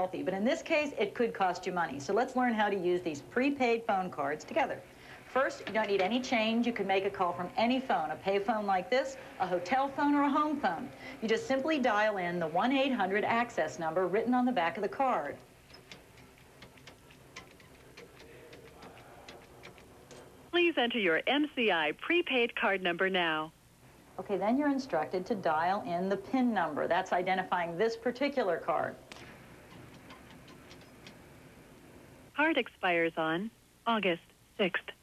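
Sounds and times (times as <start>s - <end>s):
low steady hiss: 0.0s - 35.0s
pay phone keypad buttons clicking: 15.7s - 20.2s, 29.7s - 31.2s.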